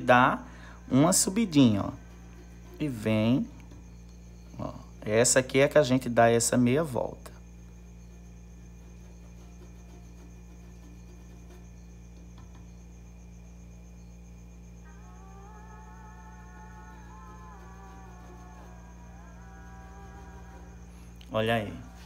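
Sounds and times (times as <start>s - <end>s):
low electrical hum with whine: 0.0s - 22.0s.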